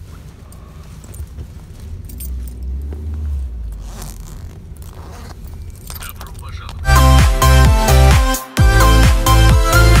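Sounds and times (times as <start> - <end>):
vehicle rumble from inside cabin: 0.0 - 7.0
light metallic jingling clicks: 0.4 - 3.1, 4.7 - 6.8.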